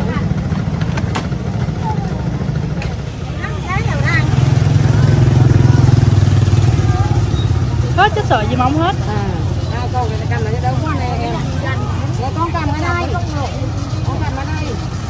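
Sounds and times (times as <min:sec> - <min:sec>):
motorbike engine running: 0:00.0 - 0:15.0
voices in background: 0:01.4 - 0:15.0.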